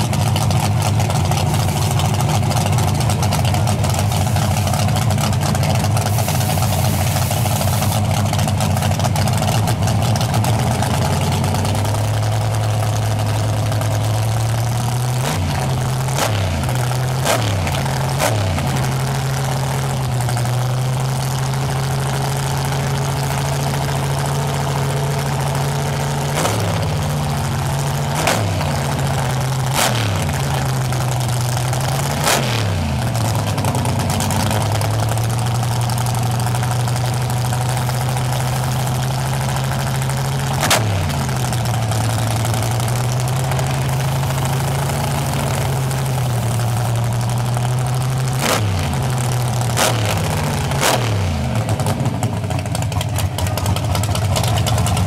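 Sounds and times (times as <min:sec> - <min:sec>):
race car engine idling and revving: 0:00.0 - 0:55.0.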